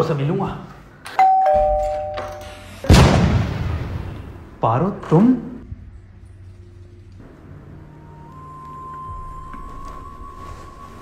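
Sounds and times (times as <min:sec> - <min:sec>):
two-tone doorbell chime: 0:01.2 - 0:02.6
loud boom: 0:02.9 - 0:04.5.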